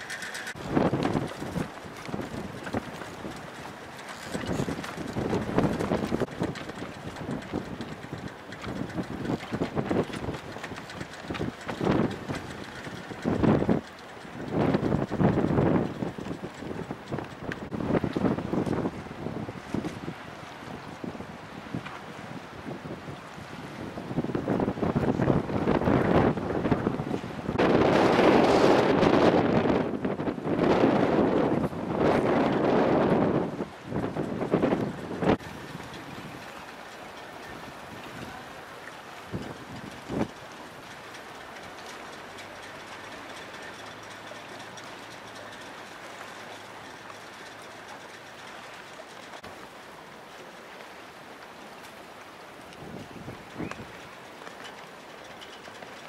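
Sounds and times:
rushing water: 0.0s - 56.0s
wind buffeting microphone: 0.0s - 56.0s.

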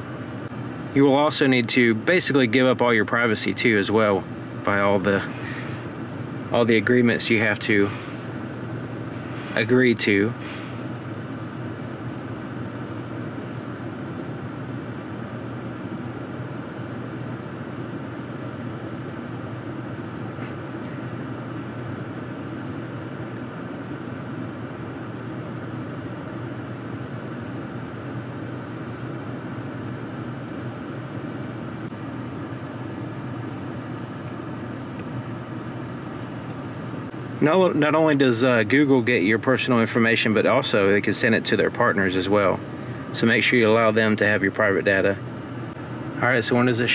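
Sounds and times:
car cabin hum with ventilation fan: 0.0s - 46.9s.

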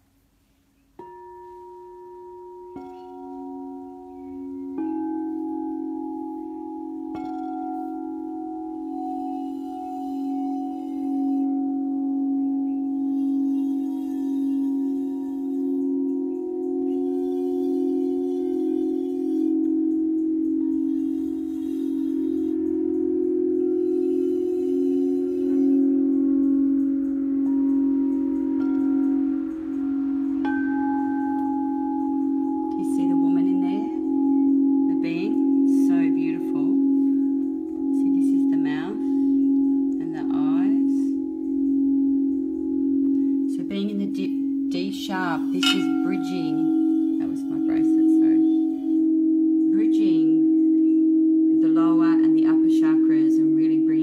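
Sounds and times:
singing bowls ringing: 0.0s - 54.0s.

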